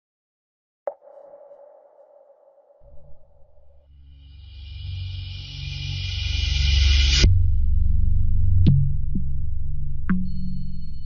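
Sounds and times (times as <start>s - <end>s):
bell-like struck tone: 0.9s - 7.3s
low droning pad: 2.5s - 11.0s.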